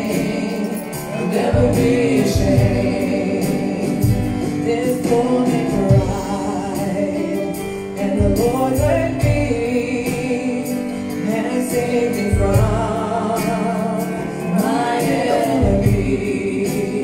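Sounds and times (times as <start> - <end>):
electronic keyboard accompaniment: 0.0 - 17.0
woman singing into a microphone: 0.0 - 17.0.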